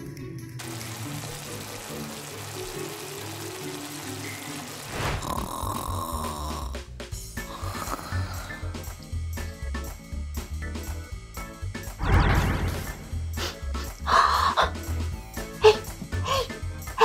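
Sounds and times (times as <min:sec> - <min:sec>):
background music: 0:00.0 - 0:17.0
food frying sizzle: 0:00.6 - 0:06.8
snoring sound effect: 0:05.0 - 0:06.8, 0:07.5 - 0:08.6.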